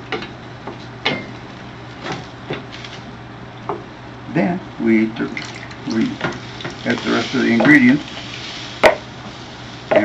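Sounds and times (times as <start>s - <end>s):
low hiss: 2.7s - 10.0s.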